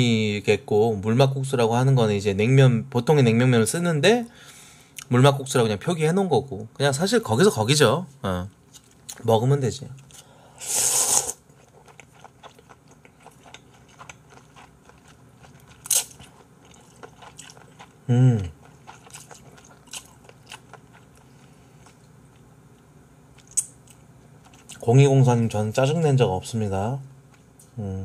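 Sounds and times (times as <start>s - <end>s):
soft chewing: 8.5s - 10.3s, 11.1s - 25.0s, 27.0s - 27.8s
noodles being slurped: 10.6s - 11.4s
closed-mouth hum: 17.4s - 28.0s.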